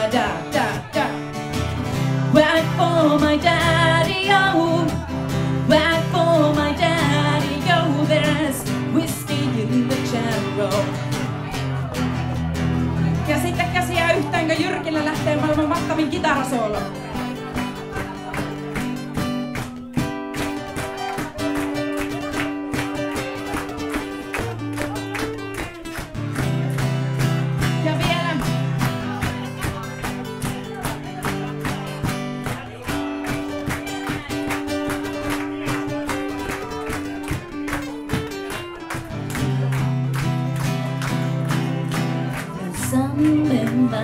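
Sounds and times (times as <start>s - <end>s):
strummed acoustic guitar: 0.0s - 44.0s.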